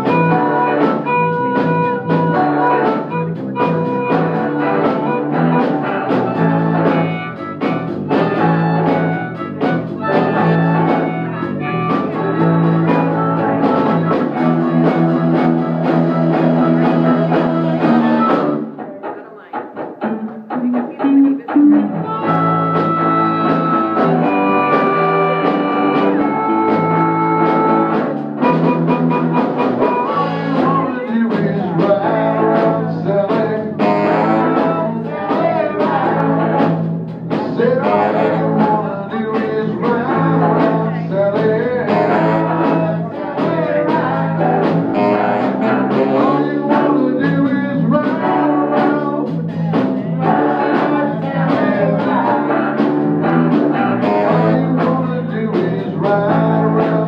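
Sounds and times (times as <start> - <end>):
bass guitar: 0.0 - 57.0
drum kit: 0.0 - 57.0
electric guitar: 0.0 - 57.0.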